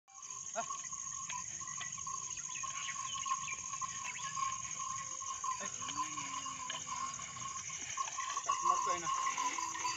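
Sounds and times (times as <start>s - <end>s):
field insects chirring: 0.1s - 9.9s.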